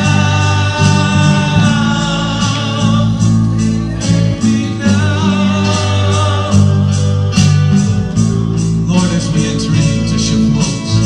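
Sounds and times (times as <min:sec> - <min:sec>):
acoustic guitar: 0:00.0 - 0:11.0
voices singing held notes: 0:00.0 - 0:11.0.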